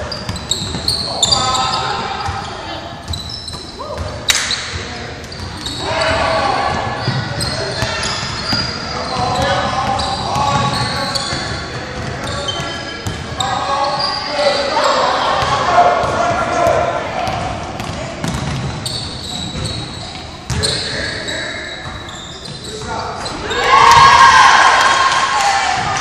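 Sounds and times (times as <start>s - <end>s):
sneakers squeaking on court: 0.0s - 23.9s
players shouting: 23.3s - 26.0s.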